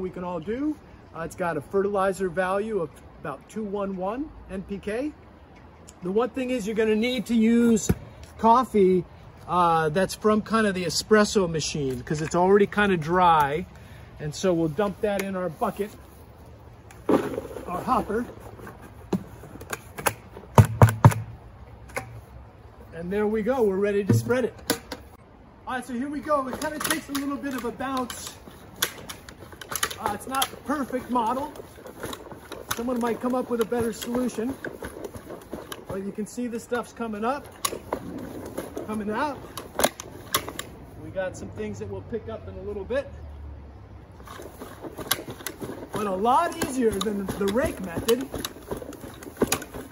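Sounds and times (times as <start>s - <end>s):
spreader rolling over grass: 10.9s - 20.0s, 25.7s - 41.5s, 44.2s - 49.9s
knocks and thuds on plastic hopper: 20.5s - 21.4s.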